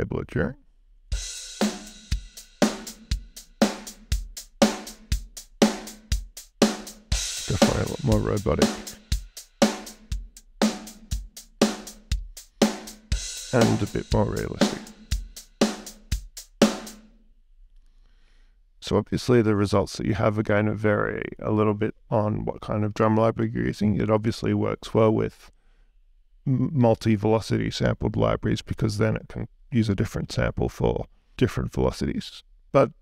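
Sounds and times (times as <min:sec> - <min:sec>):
snare drum: 0:01.2 - 0:17.0
hi-hats: 0:01.2 - 0:17.1
kick drum: 0:10.1 - 0:11.4, 0:12.1 - 0:12.4.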